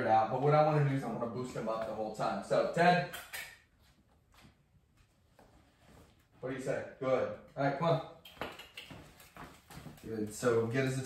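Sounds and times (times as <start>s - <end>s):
footsteps on tile floor: 8.3s - 10.4s.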